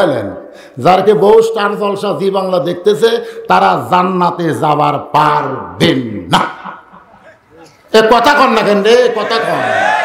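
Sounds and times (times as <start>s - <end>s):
man speaking through loudspeakers: 7.6s - 9.8s.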